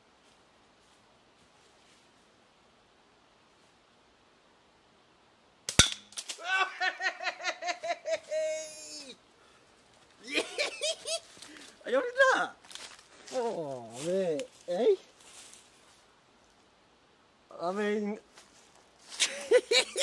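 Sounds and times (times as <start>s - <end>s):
man whooping and cheering: 6.4s - 7.2s, 8.1s - 9.2s.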